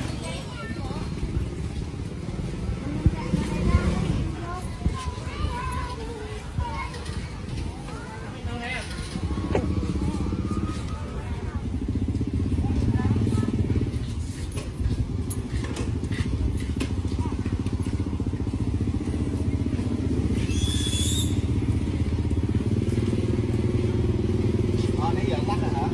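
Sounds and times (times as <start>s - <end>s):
motor engine running: 8.8s - 25.9s.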